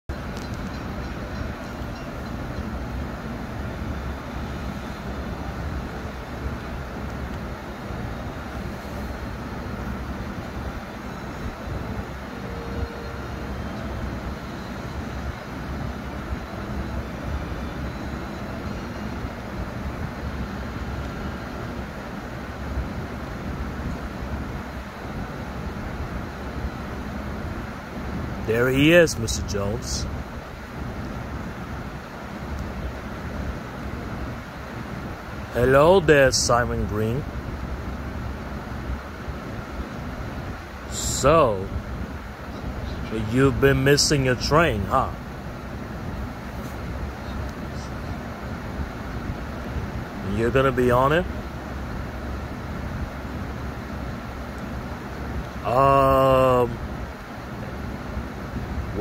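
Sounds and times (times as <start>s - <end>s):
street traffic rumble: 0.0s - 59.0s
train: 0.1s - 36.2s, 37.2s - 43.2s, 44.2s - 50.2s, 51.3s - 55.6s.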